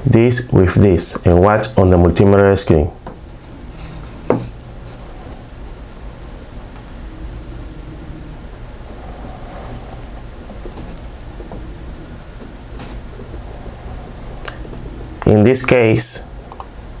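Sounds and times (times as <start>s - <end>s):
low background rumble: 0.0s - 17.0s.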